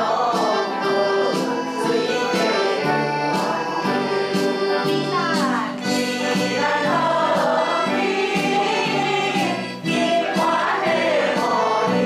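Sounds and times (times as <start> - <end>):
instrumental accompaniment: 0.0 - 12.0
people singing along: 0.0 - 12.0
woman singing: 5.0 - 12.0.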